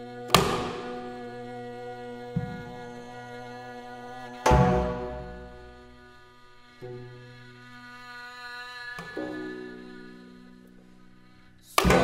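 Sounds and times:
bowed fiddle long note: 0.0s - 12.0s.

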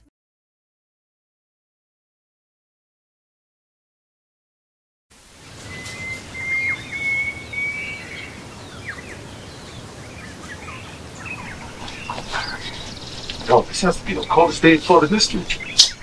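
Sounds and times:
outdoor background noise: 5.1s - 16.0s
songbirds calling: 5.4s - 16.0s.

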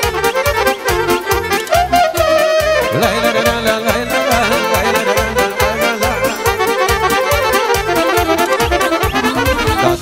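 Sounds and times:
folk band playing fast dance tune: 0.0s - 10.0s.

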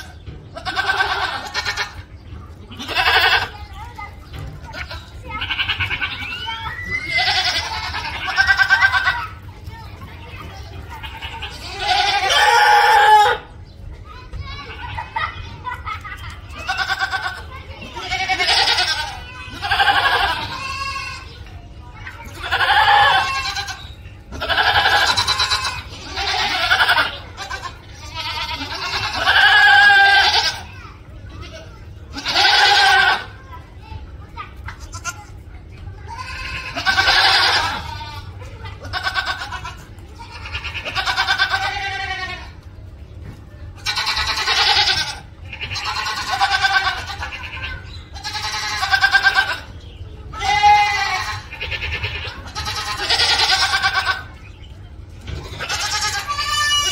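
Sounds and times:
goat bleating: 0.0s - 2.1s, 2.7s - 9.5s, 10.4s - 13.5s, 14.5s - 21.5s, 22.2s - 33.4s, 34.7s - 35.4s, 36.0s - 42.7s, 43.8s - 49.7s, 50.3s - 54.5s, 55.2s - 56.9s.

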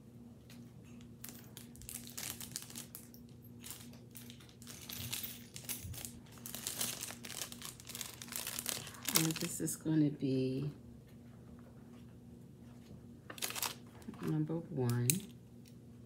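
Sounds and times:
plastic bag crinkling: 1.2s - 9.7s, 13.3s - 14.4s.

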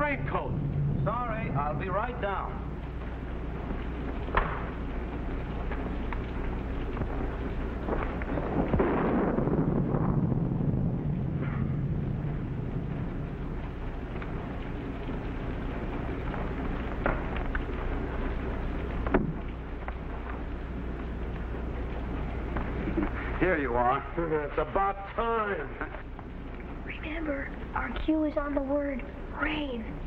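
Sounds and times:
low roll of thunder: 0.0s - 20.2s
heavy rain: 0.0s - 30.0s.

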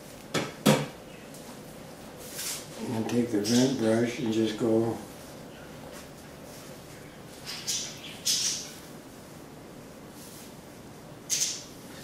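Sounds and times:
brush swishing through hair: 2.2s - 2.8s.

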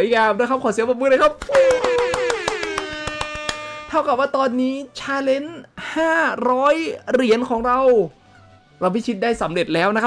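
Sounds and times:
hands clapping: 1.2s - 3.9s.

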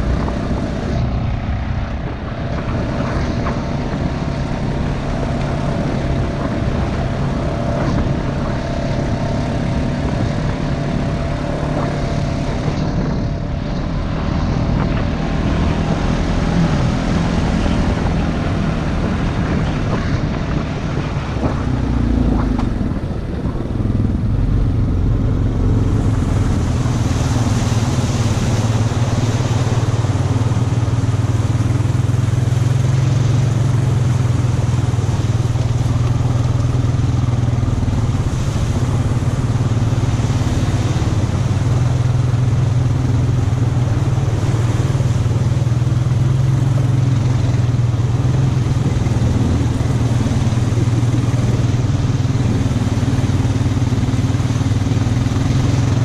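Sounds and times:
atv engine running: 0.0s - 56.0s
water and mud splashing: 0.0s - 56.0s.

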